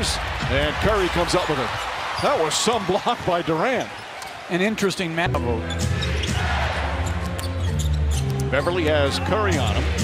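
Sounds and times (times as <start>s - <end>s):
arena music with low bass: 5.3s - 10.0s.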